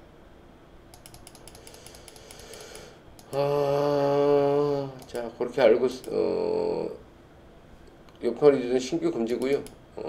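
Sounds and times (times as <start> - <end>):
faint computer mouse clicks: 0.9 - 3.4, 9.4 - 9.8.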